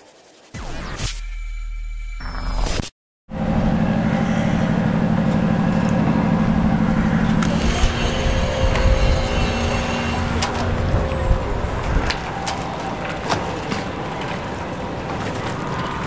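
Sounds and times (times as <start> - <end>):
background rumble: 3.3 - 16.0
engine pulsing low hum: 3.3 - 16.0.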